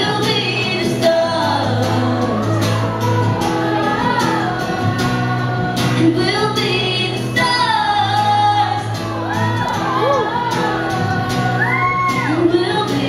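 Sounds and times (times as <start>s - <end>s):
musical accompaniment: 0.0s - 13.0s
woman singing through a microphone: 0.0s - 13.0s.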